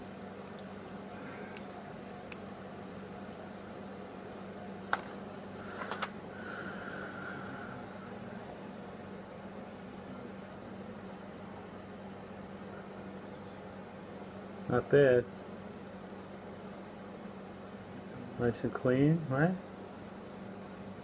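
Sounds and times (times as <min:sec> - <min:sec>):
low room hum with hiss: 0:00.0 - 0:21.0.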